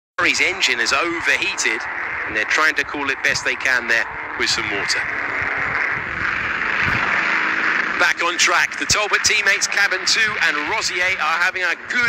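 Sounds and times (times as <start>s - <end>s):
racing car engines droning: 0.2s - 12.0s.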